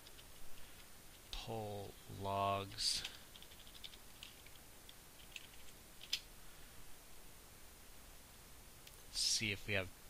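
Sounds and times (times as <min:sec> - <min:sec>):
computer keyboard keystrokes: 0:03.0 - 0:04.6, 0:05.2 - 0:06.2.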